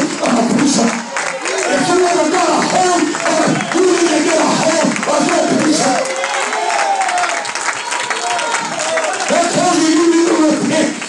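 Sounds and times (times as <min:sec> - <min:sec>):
congregation clapping: 0:00.0 - 0:11.0.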